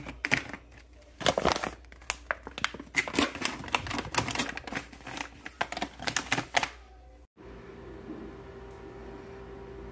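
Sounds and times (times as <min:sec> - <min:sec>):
plastic pouches crinkling: 0:00.0 - 0:06.8.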